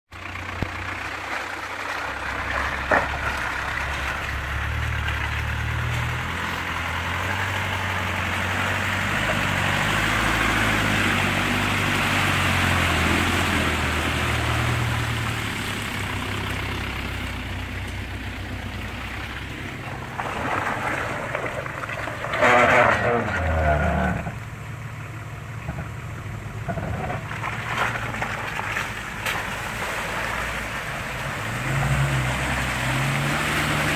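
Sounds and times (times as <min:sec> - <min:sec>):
car engine running at low speed: 0:00.1 - 0:33.9.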